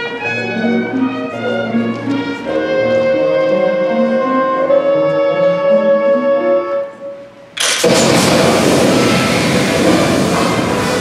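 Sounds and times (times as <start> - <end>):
orchestra playing: 0.0 - 11.0
loud rushing blast of vapour: 7.6 - 11.0.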